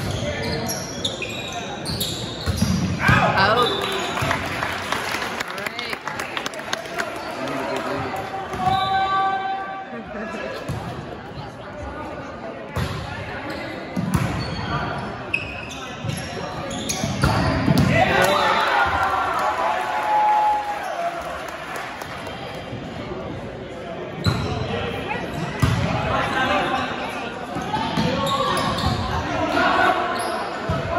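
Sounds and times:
sneakers squeaking on hardwood: 0.0 - 2.9, 13.4 - 17.8, 27.6 - 29.2.

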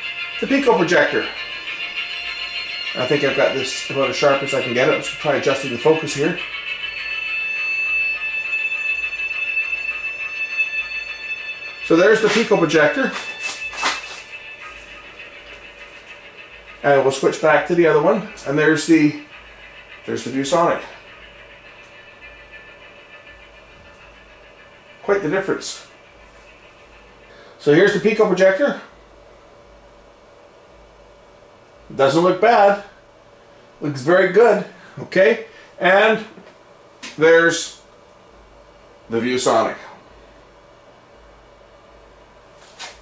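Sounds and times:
low hum: 0.0 - 32.0
high-pitched electronic whine: 0.0 - 43.0
thin steady tone: 0.0 - 43.0.

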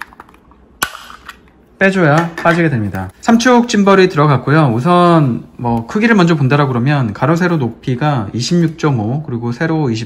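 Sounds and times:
sharp plastic snap: 0.0 - 1.6.

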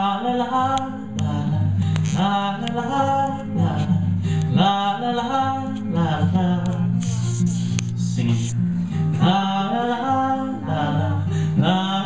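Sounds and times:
acoustic guitar strumming: 0.0 - 12.0
man singing la la: 0.0 - 12.0.

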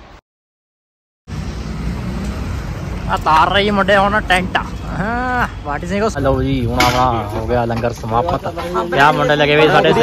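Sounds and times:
rumbling road traffic: 1.3 - 10.0.

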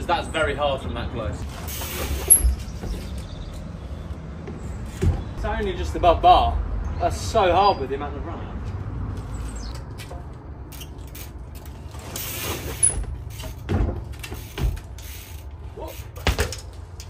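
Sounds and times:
bike thudding on wooden pallets: 1.4 - 3.6, 4.4 - 5.4, 10.0 - 17.0.

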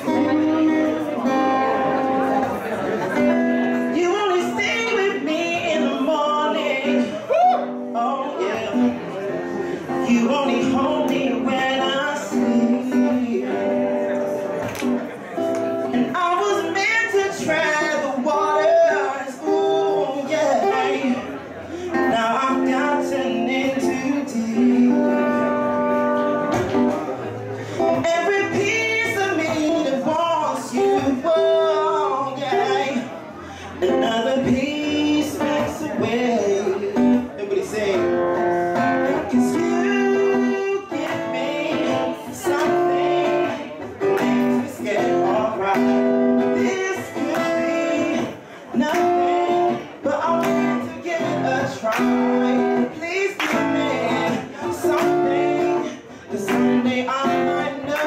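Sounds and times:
acoustic guitar accompaniment: 0.0 - 58.0
man singing into a microphone: 0.0 - 58.0.

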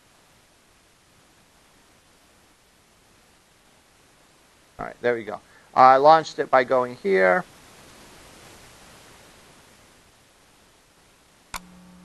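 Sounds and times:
steady low buzz: 11.6 - 12.0.

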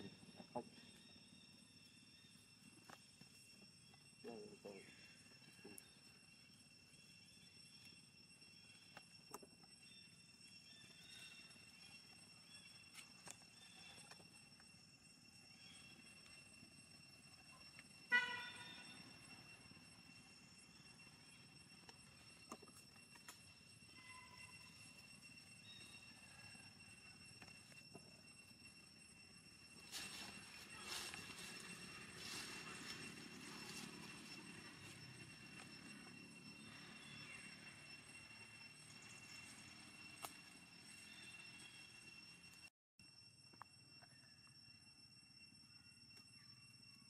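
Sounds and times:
faint high whine: 0.0 - 47.0.

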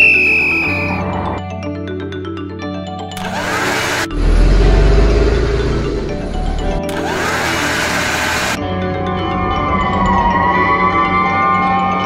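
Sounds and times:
loud low engine-like rumble: 4.1 - 6.9.

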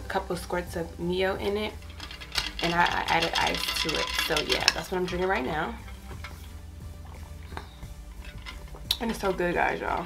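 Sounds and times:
soft background music: 0.0 - 10.0
ice clinking in tumbler: 1.8 - 6.4.

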